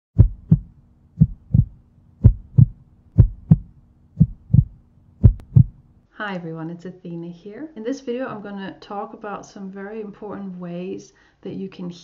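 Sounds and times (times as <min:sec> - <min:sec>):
heartbeat double thumps: 0:00.2 - 0:05.8
faint steady hum: 0:00.2 - 0:11.6.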